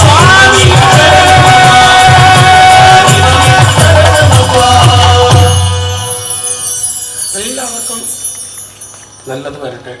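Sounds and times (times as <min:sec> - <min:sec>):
devotional song: 0:00.0 - 0:09.5
high metallic chime ringing: 0:03.6 - 0:09.8.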